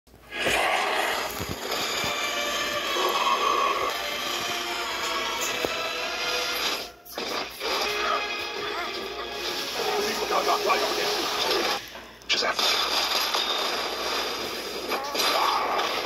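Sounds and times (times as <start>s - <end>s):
dramatic film music: 1.2s - 11.9s.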